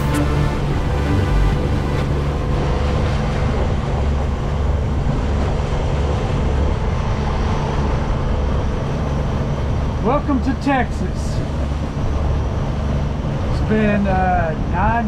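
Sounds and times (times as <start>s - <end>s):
boat engine rumbling: 0.0s - 15.0s
wind and water noise: 0.0s - 15.0s.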